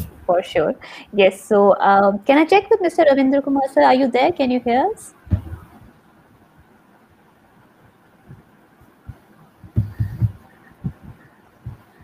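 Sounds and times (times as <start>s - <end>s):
faint steady hiss: 0.0s - 12.0s
soft low thumps: 5.2s - 6.0s, 8.3s - 12.0s.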